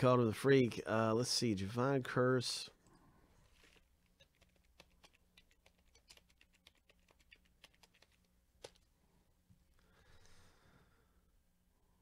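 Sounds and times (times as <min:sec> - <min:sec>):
typing on computer keyboard: 0:04.2 - 0:08.8.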